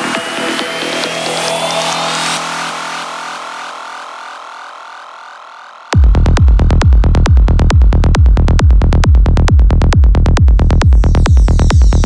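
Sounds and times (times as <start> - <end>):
drums and bass beat: 6.0 - 12.0.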